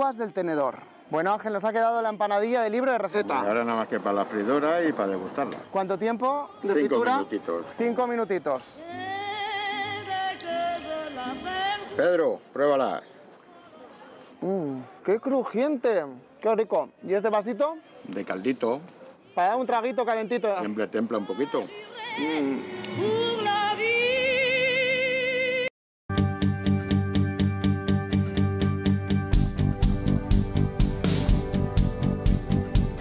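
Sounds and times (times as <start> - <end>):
person singing long notes: 22.0 - 25.0.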